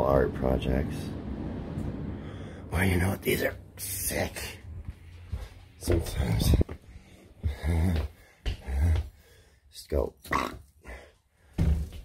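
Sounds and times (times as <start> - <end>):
person making wordless sounds: 7.4 - 9.2, 10.1 - 10.9.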